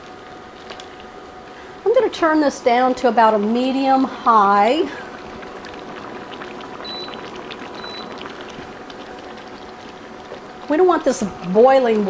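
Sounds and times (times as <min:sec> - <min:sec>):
sauce bubbling in a skillet: 0:03.1 - 0:12.0.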